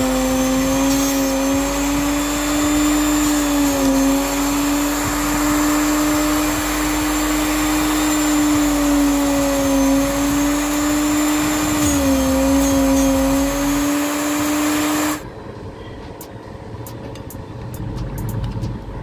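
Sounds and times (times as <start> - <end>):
electric motor whining: 0.0 - 15.2.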